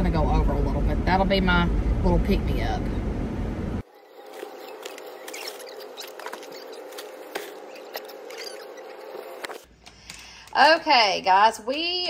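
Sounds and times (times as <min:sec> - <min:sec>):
short high squeaks: 0:04.1 - 0:09.6.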